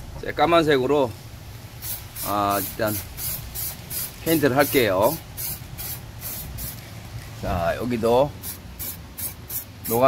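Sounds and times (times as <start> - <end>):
spray can hissing bursts: 1.8 - 7.0, 8.4 - 10.0.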